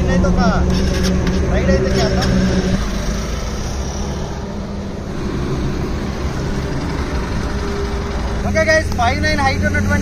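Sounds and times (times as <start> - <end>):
wind and road noise: 0.0 - 10.0
motorcycle engine running: 5.0 - 10.0.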